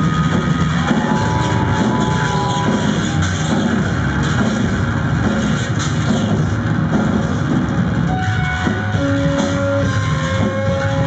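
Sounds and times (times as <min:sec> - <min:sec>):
distorted electric guitar noise: 0:00.0 - 0:11.0
heavy low rumble: 0:00.0 - 0:11.0.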